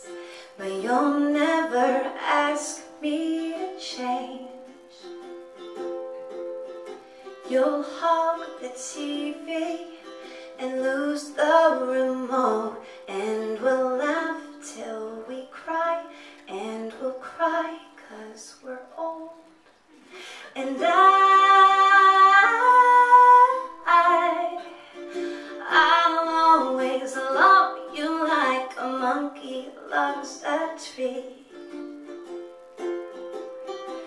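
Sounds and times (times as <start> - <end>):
woman singing: 0.0 - 5.1, 7.3 - 19.6, 20.2 - 31.8
plucked string accompaniment: 0.0 - 34.0.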